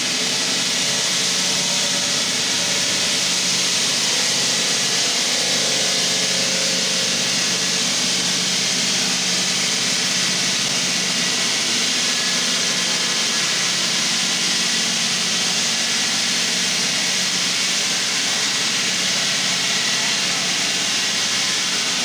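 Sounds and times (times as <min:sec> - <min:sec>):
circular saw cutting stone: 0:00.0 - 0:22.0.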